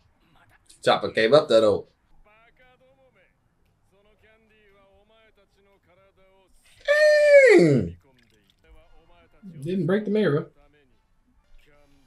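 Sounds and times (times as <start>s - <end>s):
faint cartoon dialogue: 6.6s - 10.6s
man groaning: 6.8s - 7.9s.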